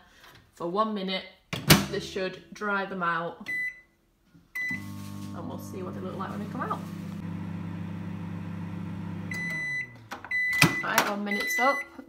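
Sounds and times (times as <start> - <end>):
microwave oven humming: 4.7 - 10.1.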